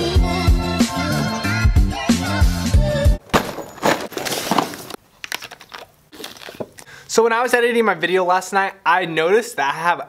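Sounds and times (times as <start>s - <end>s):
music: 0.0s - 3.2s
crinkling handling noise: 3.2s - 6.9s.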